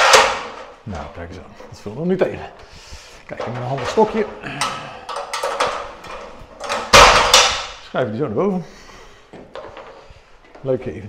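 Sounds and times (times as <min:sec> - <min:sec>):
metal loft ladder clattering and knocking: 0:00.0 - 0:01.1, 0:03.3 - 0:07.8.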